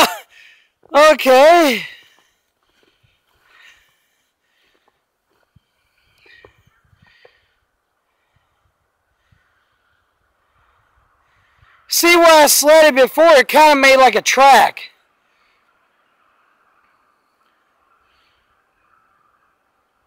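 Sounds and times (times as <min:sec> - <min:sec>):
faint breath-like sounds: 0:01.7 - 0:11.9, 0:15.0 - 0:20.0.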